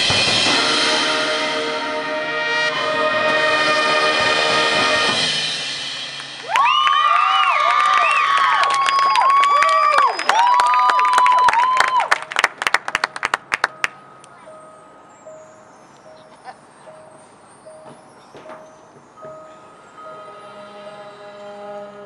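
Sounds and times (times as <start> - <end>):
stadium crowd cheering: 6.2 - 13.7
scattered clapping: 6.2 - 14.0
whistles: 6.4 - 12.4.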